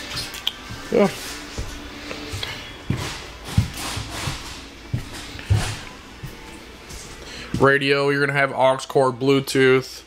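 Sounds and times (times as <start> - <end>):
heavy footsteps on floor: 0.7 - 7.8.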